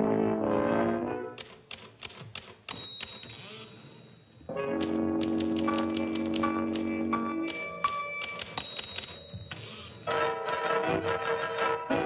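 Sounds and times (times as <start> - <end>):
typewriter keys clacking: 1.4 - 3.8, 4.7 - 10.0.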